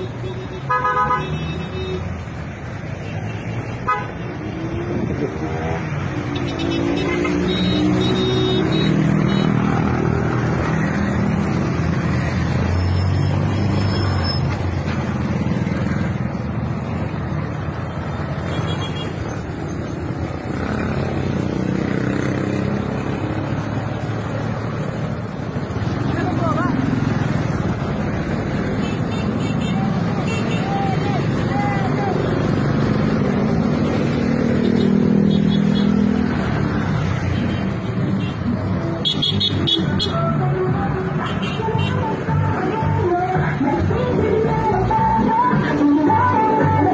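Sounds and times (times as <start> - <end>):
car and motorcycle engines: 0.0 - 46.9
voices: 29.2 - 32.4.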